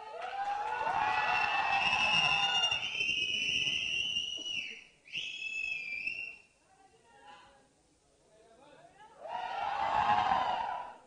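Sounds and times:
audience cheering and screaming: 0:00.0 - 0:03.0, 0:09.2 - 0:11.0
loud human whistle: 0:01.5 - 0:06.5.

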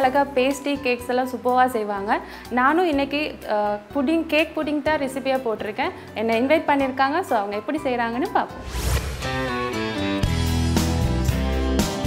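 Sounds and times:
woman speaking: 0:00.0 - 0:08.6
soft background music: 0:00.0 - 0:12.0
whoosh transition effect: 0:08.6 - 0:10.0.

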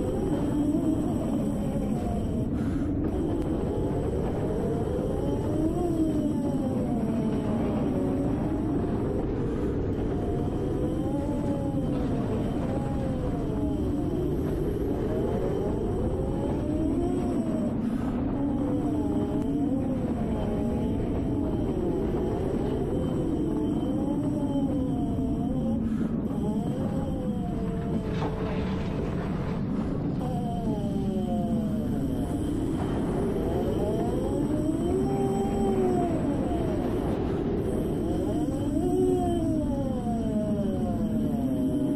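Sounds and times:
steady low rumble: 0:00.0 - 0:41.9.

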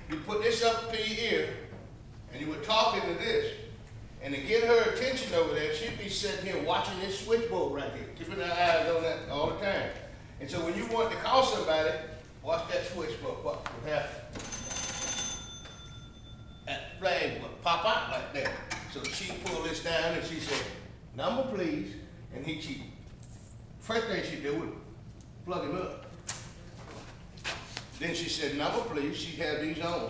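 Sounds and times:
telephone bell ringing: 0:14.4 - 0:16.7.

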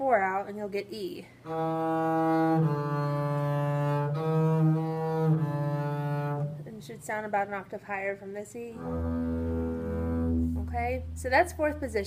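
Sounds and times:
bowed double bass notes: 0:01.5 - 0:07.1, 0:08.8 - 0:12.0.

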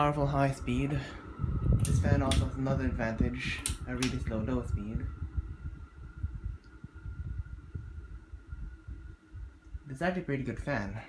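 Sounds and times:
ceiling fan motor hum: 0:00.0 - 0:11.0
low rumble of moving air: 0:00.0 - 0:11.0.

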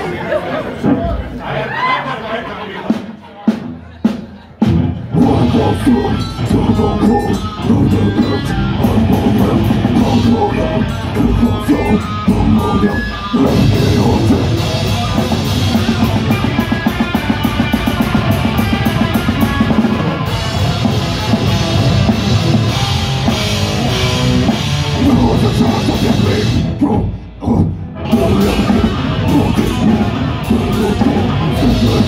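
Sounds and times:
drum kit: 0:02.9 - 0:32.0
distorted guitars: 0:03.5 - 0:32.0.

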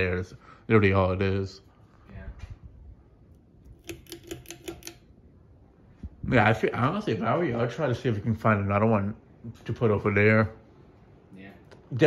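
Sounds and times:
ceiling fan running: 0:00.0 - 0:12.0.

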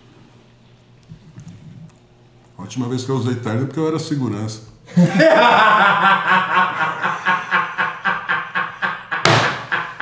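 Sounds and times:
men laughing hard: 0:04.9 - 0:10.0.

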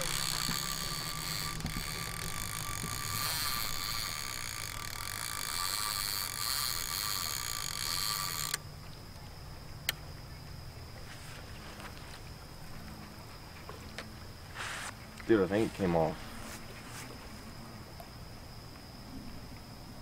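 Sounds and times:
fishing reel gears whirring: 0:00.0 - 0:08.7.

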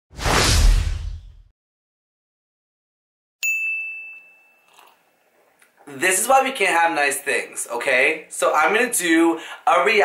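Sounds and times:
whoosh sound effect: 0:00.1 - 0:01.5.

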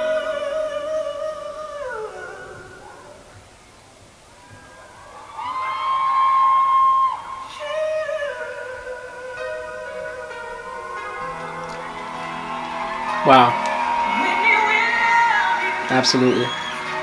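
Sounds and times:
woman singing a ballad: 0:13.6 - 0:17.0.

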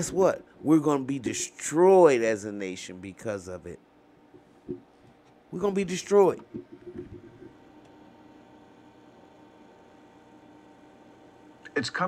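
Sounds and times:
low even hum: 0:00.0 - 0:12.0.

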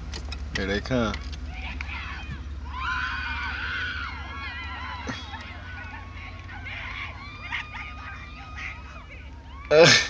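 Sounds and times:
low steady hum: 0:00.0 - 0:10.0
girls screaming: 0:01.5 - 0:10.0.

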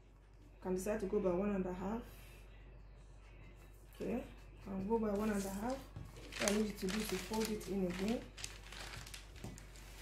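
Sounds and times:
paper being folded: 0:05.1 - 0:10.0.

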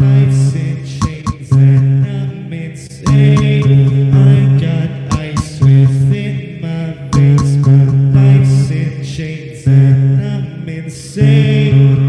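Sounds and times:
low droning vocal loops: 0:00.0 - 0:12.0
beatbox percussive hits: 0:01.0 - 0:02.1, 0:03.1 - 0:04.2, 0:05.1 - 0:06.0, 0:07.2 - 0:08.2.

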